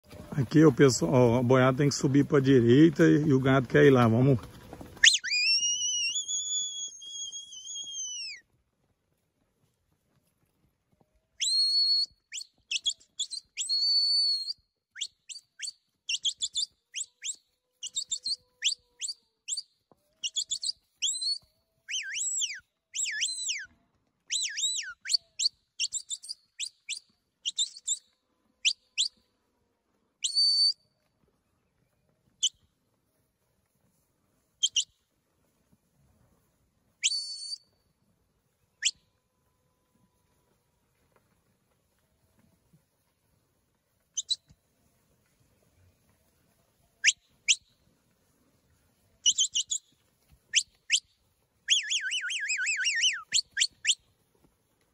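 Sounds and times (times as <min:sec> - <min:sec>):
high-pitched herding whistle: 0:05.0 - 0:08.4, 0:11.4 - 0:19.6, 0:20.2 - 0:23.7, 0:24.3 - 0:28.0, 0:30.2 - 0:30.8, 0:34.6 - 0:35.0, 0:37.0 - 0:37.8, 0:38.7 - 0:40.1, 0:44.1 - 0:44.6, 0:47.0 - 0:47.7, 0:49.2 - 0:54.0.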